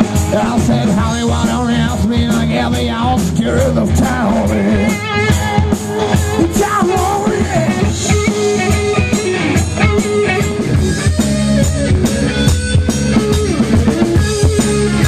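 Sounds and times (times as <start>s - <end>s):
bass guitar: 0.0s - 15.0s
drum kit beat: 0.0s - 15.0s
electric guitar: 0.0s - 15.0s.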